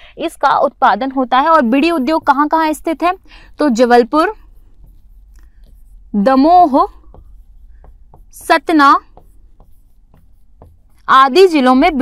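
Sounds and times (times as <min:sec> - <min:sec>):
marker pen scratching on board: 0:01.1 - 0:12.0.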